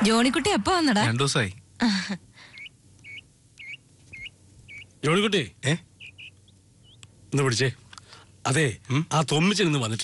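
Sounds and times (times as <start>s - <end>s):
small animal chirping: 2.4s - 7.1s.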